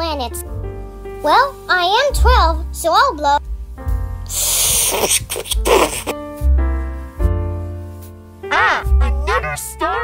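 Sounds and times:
background music with bass line: 0.0s - 10.0s
person blowing into microphone: 4.2s - 6.2s.

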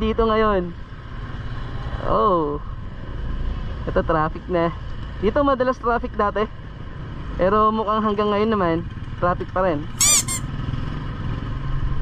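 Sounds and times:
high-pitched squeak: 10.0s - 10.5s.

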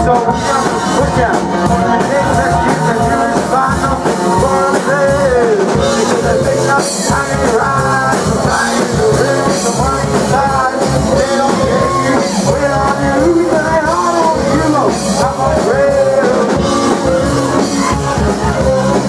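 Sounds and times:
rock band playing live: 0.0s - 19.0s.

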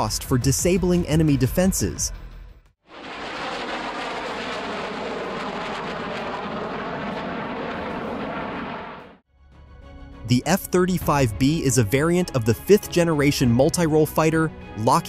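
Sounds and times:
jet engine rush: 2.9s - 9.2s.

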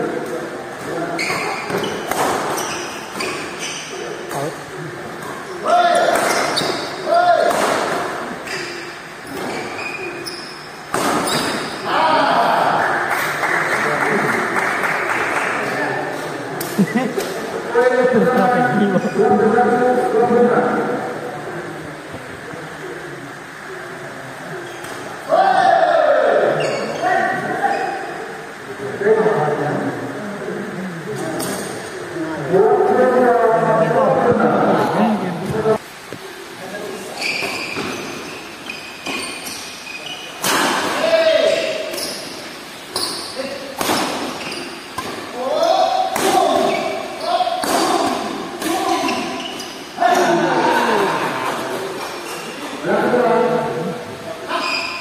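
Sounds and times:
voices echoing in a hall: 0.0s - 55.0s.

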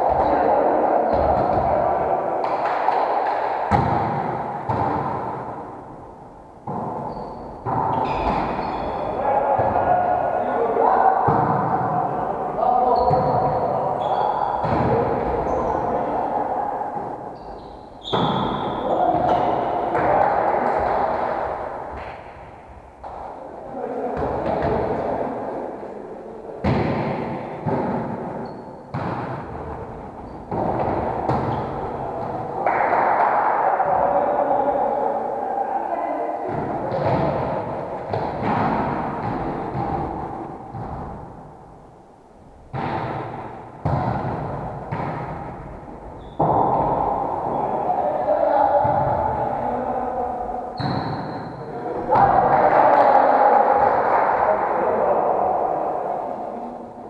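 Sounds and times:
volleyball thuds echoing in hall: 0.0s - 57.0s
indistinct voices: 29.4s - 41.0s, 46.2s - 57.0s.

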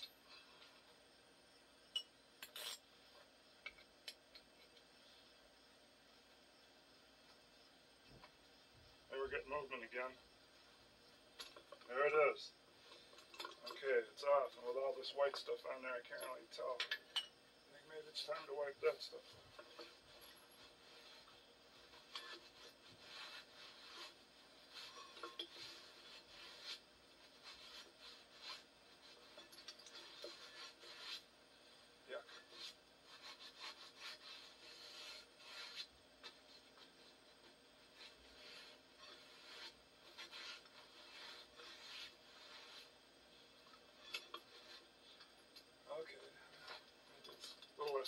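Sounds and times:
rag rubbing on metal: 19.2s - 45.3s.

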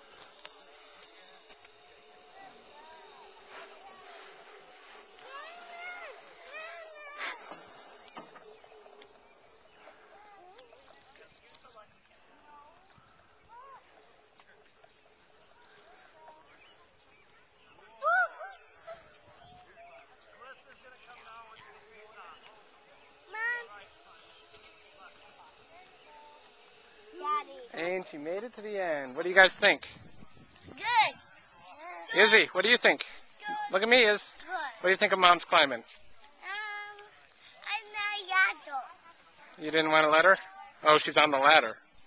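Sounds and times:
distant voices: 0.0s - 42.0s
faint outdoor ambience: 0.0s - 42.0s.

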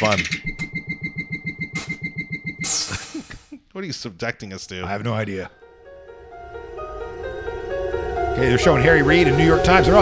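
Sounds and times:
fast electronic pulse: 0.4s - 2.9s
steady high tone: 0.6s - 2.9s.

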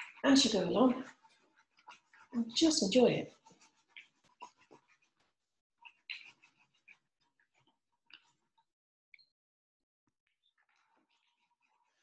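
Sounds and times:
paint roller on canvas: 0.0s - 8.4s.

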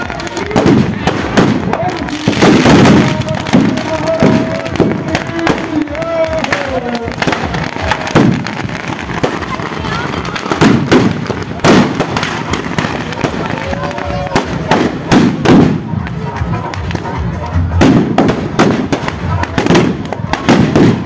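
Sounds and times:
firecrackers crackling: 0.0s - 21.0s
loud firecracker bangs: 0.0s - 21.0s.

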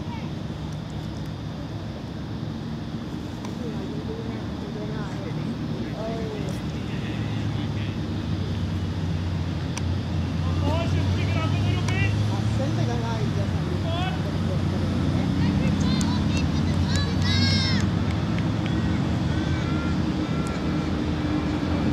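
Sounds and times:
vehicle engine hum: 0.0s - 21.9s.

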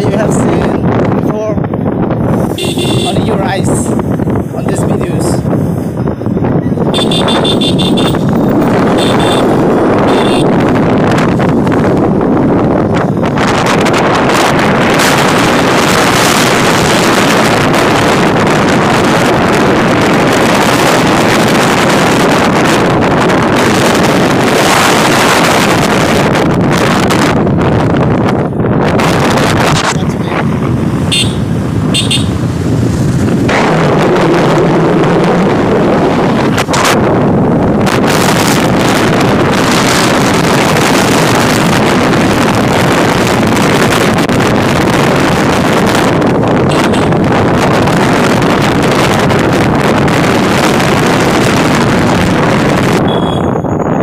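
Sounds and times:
wind rush on microphone: 0.0s - 54.0s
motorcycle engine: 0.7s - 4.6s, 5.2s - 54.0s.

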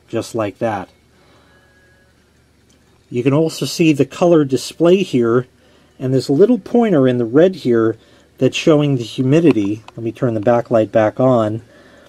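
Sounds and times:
faint hiss: 0.0s - 12.0s
faint thin tone: 0.9s - 2.3s.

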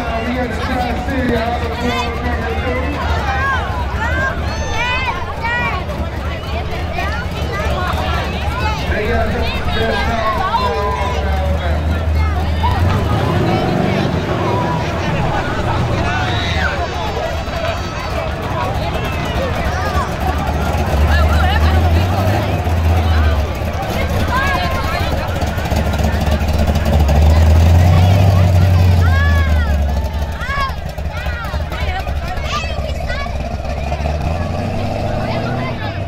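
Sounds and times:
car engine rumbling past: 0.0s - 36.0s
crowd voices and calls: 0.0s - 36.0s.

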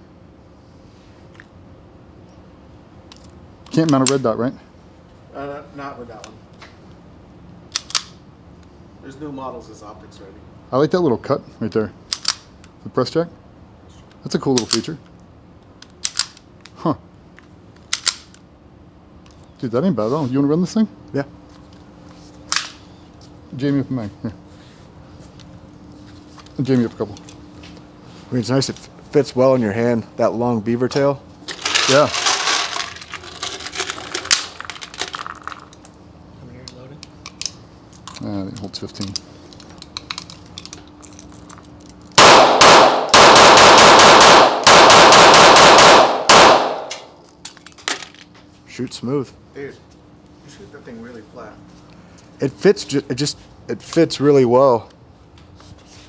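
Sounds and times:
steady low hum: 0.0s - 56.0s
pistol clicks and rattles: 7.7s - 8.2s, 12.1s - 12.8s, 14.1s - 16.8s, 17.7s - 18.5s, 36.7s - 48.4s
sharp metallic clack of pistol: 42.2s - 47.8s.

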